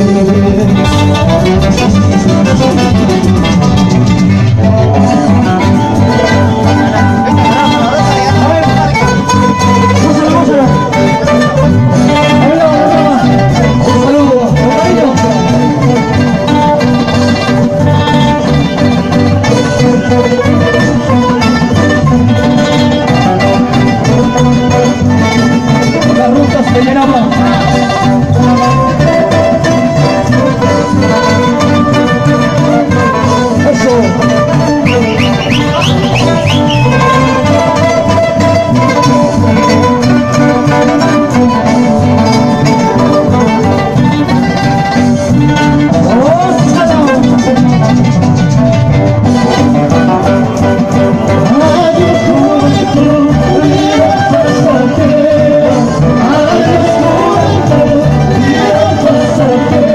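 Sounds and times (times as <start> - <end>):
acoustic guitars band playing: 0.0 - 59.9.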